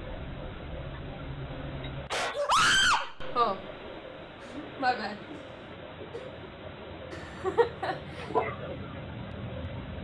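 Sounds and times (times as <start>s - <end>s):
woman screaming: 2.4s - 3.1s.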